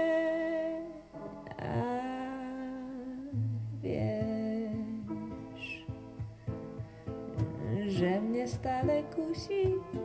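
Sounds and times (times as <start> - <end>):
person singing long notes: 0.0 - 6.2, 7.6 - 10.0
piano accompaniment: 4.9 - 10.0.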